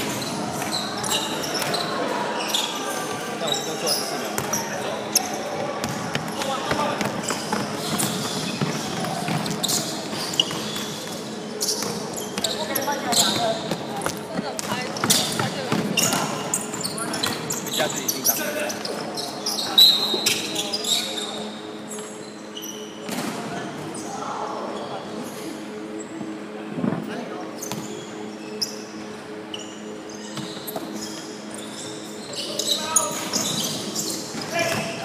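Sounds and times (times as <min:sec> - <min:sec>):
shoe squeaks: 0:00.1 - 0:05.5, 0:06.3 - 0:13.8, 0:14.7 - 0:23.1, 0:27.6 - 0:35.0
basketball bouncing on court: 0:04.4 - 0:04.6.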